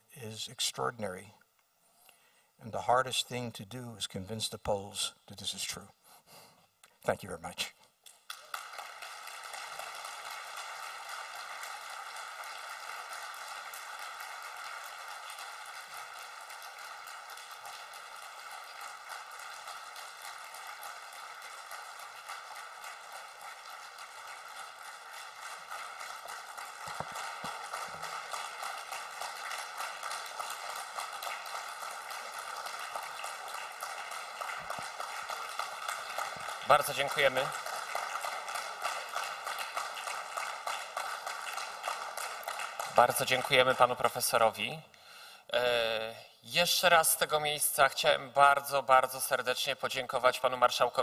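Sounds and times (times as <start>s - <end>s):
audience applauding: 8.1s - 44.6s.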